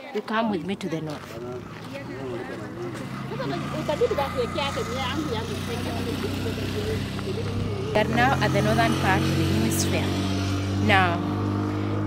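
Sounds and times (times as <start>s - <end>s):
people talking: 0.0s - 10.2s, 10.8s - 11.2s
motor engine idling: 1.4s - 9.6s.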